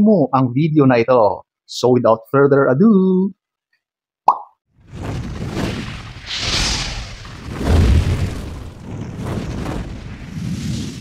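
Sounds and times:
rumbling whoosh sound effect: 0:04.8 - 0:11.0.

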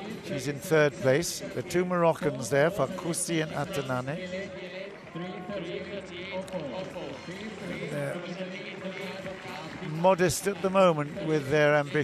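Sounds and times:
crowd of spectators talking: 0:00.0 - 0:12.0.

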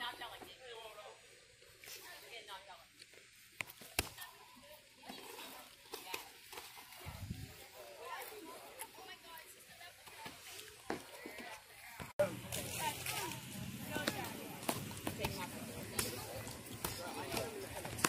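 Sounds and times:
faint background talking: 0:03.8 - 0:18.0.

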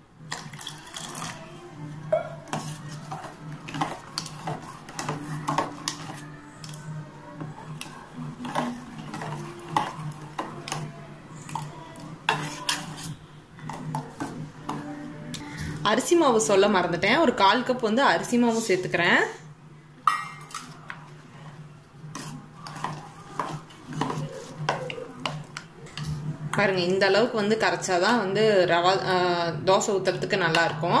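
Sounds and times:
ladle clinking and scraping pot: 0:00.3 - 0:01.4, 0:02.1 - 0:14.9, 0:20.1 - 0:21.1, 0:22.1 - 0:26.6
liquid sloshing: 0:00.3 - 0:01.7, 0:02.3 - 0:06.8, 0:07.4 - 0:14.9.

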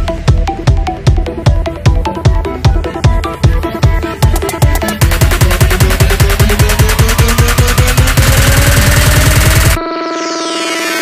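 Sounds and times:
fast electronic drum roll: 0:03.8 - 0:09.8
held synth chord: 0:04.8 - 0:11.0
rising synth tone: 0:05.1 - 0:11.0.

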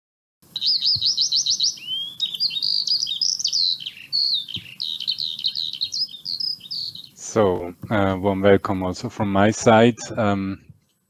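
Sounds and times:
songbird chirping and warbling: 0:00.4 - 0:11.0.

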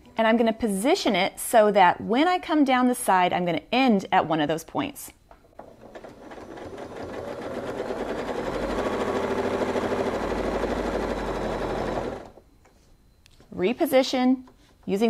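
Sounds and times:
sewing machine stitching: 0:05.5 - 0:12.4.

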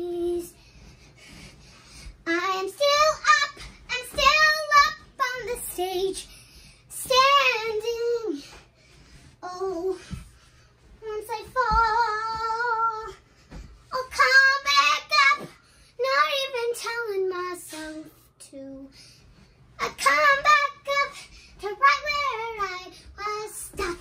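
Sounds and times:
girl singing wordless notes: 0:00.0 - 0:08.7, 0:09.4 - 0:19.2, 0:19.8 - 0:24.0.

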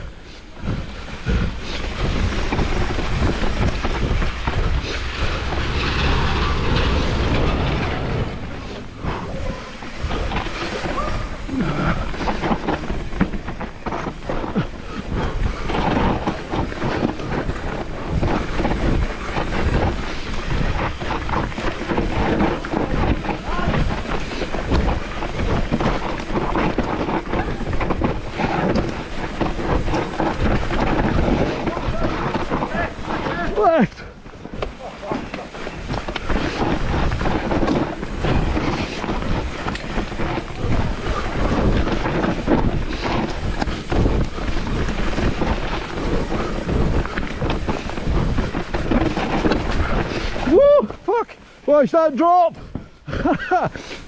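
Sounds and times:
bike rattling: 0:00.0 - 0:54.0
bike tyres on dirt trail: 0:00.0 - 0:54.0
wind buffeting microphone: 0:00.0 - 0:54.0.

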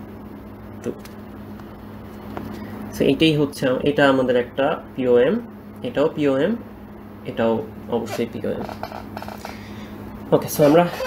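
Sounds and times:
man speaking: 0:07.3 - 0:08.8, 0:10.3 - 0:11.0.

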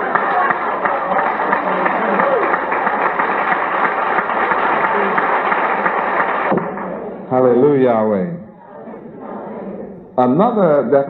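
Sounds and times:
audience clapping: 0:00.0 - 0:07.6
audience voices reacting: 0:00.0 - 0:10.8.

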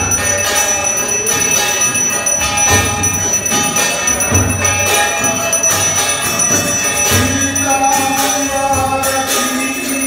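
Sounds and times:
devotional music: 0:00.0 - 0:10.0
temple bell ringing: 0:00.0 - 0:10.0.

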